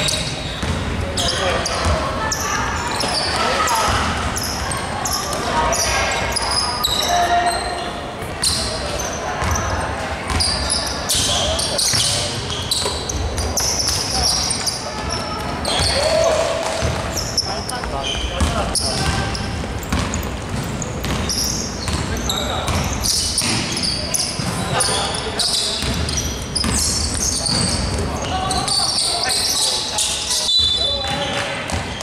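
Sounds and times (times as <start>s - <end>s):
players calling out: 0.0s - 32.0s
sneaker squeaks: 0.0s - 32.0s.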